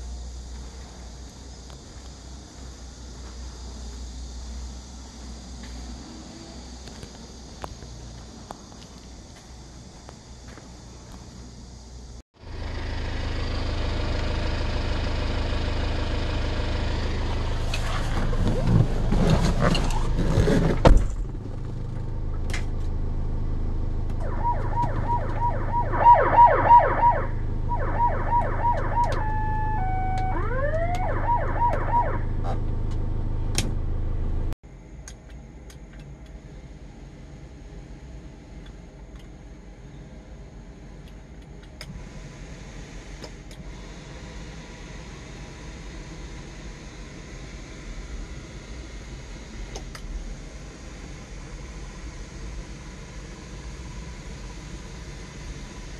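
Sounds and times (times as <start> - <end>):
van engine running: 0.0 - 34.6, 35.4 - 55.9
low hum: 11.7 - 34.6
electronic siren tones: 24.2 - 32.7.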